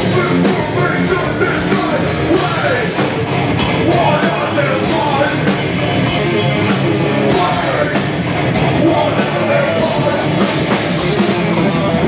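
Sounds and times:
person singing into a microphone: 0:00.0 - 0:03.0, 0:03.7 - 0:05.6, 0:07.2 - 0:12.0
heavy metal band playing live: 0:00.0 - 0:12.0.

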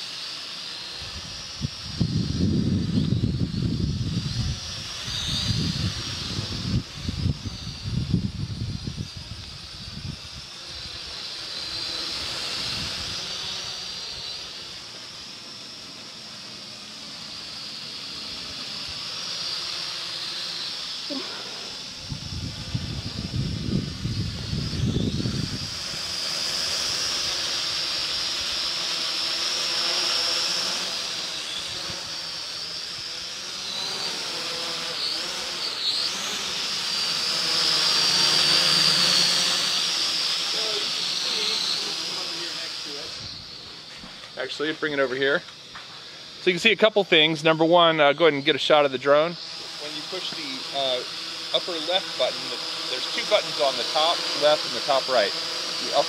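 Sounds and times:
drone propellers whining: 0:00.0 - 0:56.0.

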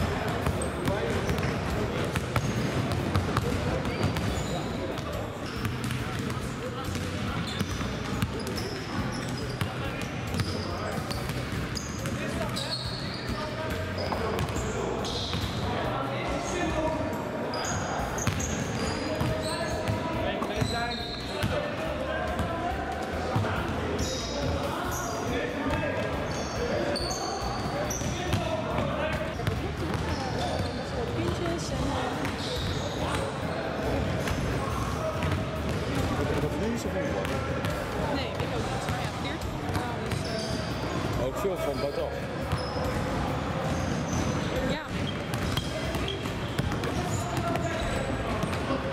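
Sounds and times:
basketballs bouncing on wooden floor: 0:00.1 - 0:12.3.

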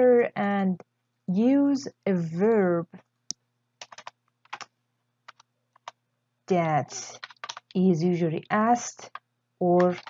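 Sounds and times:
computer keyboard keystrokes: 0:03.8 - 0:04.7, 0:05.3 - 0:06.0, 0:07.1 - 0:07.8, 0:09.8 - 0:10.0.

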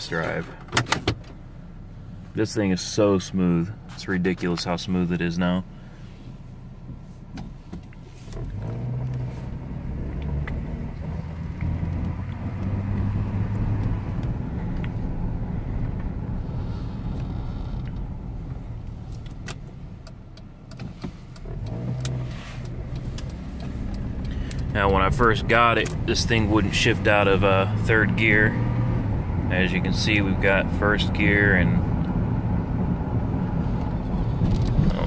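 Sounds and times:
car engine and road noise: 0:00.0 - 0:35.0.

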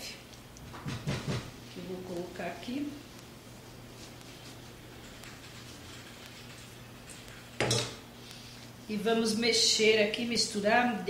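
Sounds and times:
kitchenware clanking: 0:07.6 - 0:08.0.

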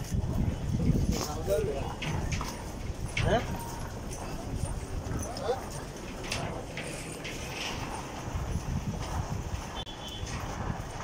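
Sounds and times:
footsteps on footbridge: 0:00.0 - 0:11.0
voices of passers-by: 0:00.0 - 0:11.0.

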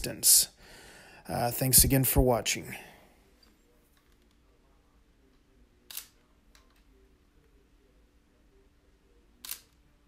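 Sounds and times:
camera shutter click: 0:05.9 - 0:06.2, 0:09.4 - 0:09.8.

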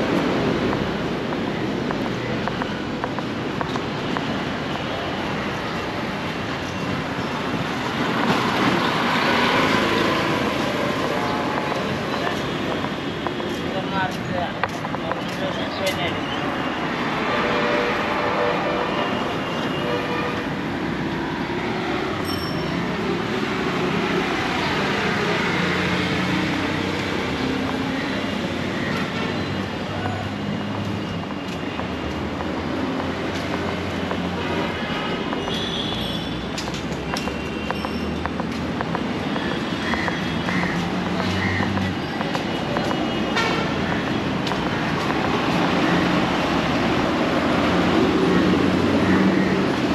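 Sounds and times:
traffic noise: 0:00.0 - 0:49.9.

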